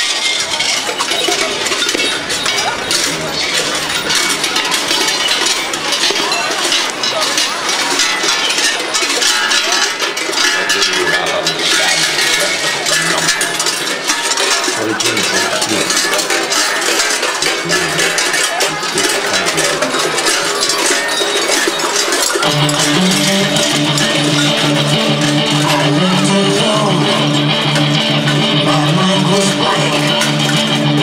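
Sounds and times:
large bells clanging: 0.0s - 31.0s
background music: 22.2s - 31.0s.

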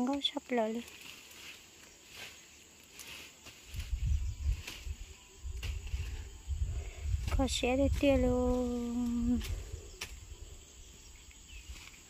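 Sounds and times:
faint outdoor ambience: 0.0s - 12.0s
low rumble on microphone: 3.7s - 11.8s.

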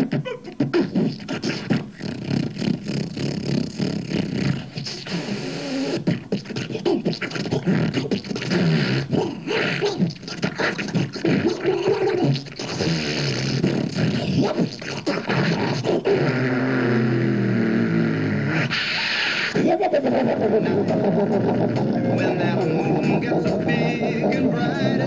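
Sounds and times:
beatboxing into microphone: 0.0s - 25.0s.

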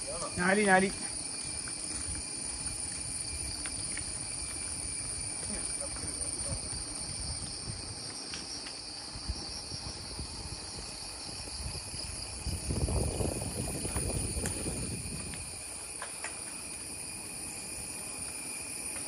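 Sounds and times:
shrill insect chorus: 0.0s - 19.0s
faint ticks: 3.5s - 4.2s.

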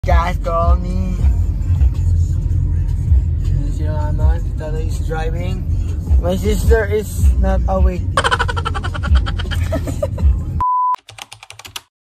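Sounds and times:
keyboard key clicks: 11.0s - 11.9s.

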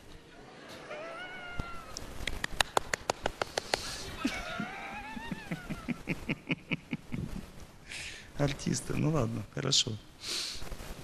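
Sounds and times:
high drawn-out vocal call: 0.8s - 2.0s
handclaps: 1.9s - 3.9s.

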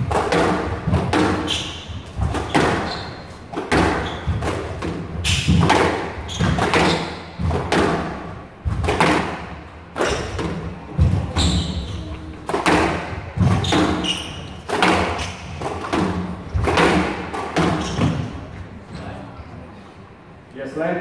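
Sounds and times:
squash ball hits: 0.0s - 18.5s
shoes squeaking on court floor: 1.1s - 7.5s, 10.0s - 16.6s, 17.4s - 19.4s.

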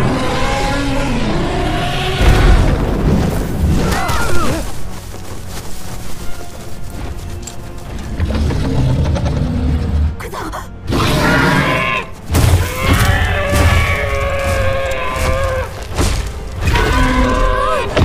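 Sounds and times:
dramatic film music: 0.0s - 18.0s.

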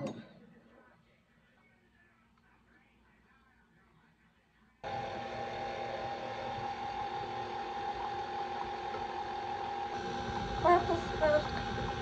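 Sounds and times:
stand mixer motor running: 4.8s - 12.0s.

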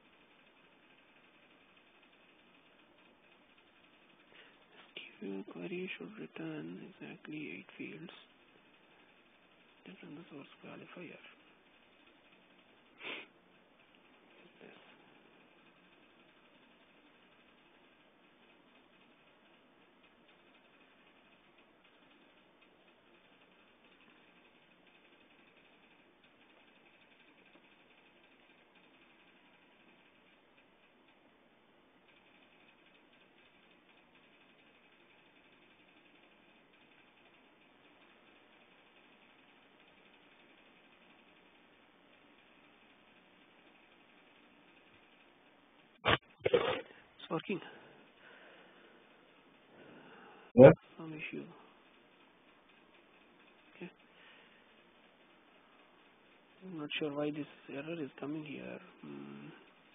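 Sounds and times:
faint steady hiss: 0.0s - 59.9s.

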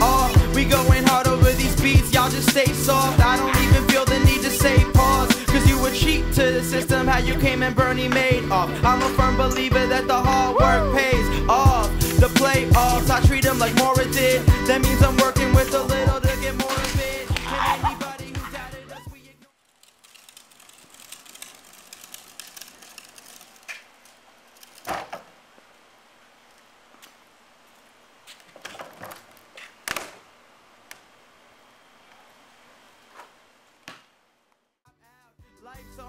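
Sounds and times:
rapping over hip-hop beat: 0.0s - 19.4s, 35.0s - 36.0s.

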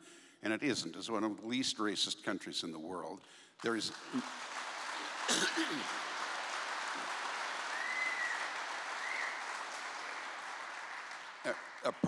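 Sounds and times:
audience applauding: 3.6s - 12.0s.

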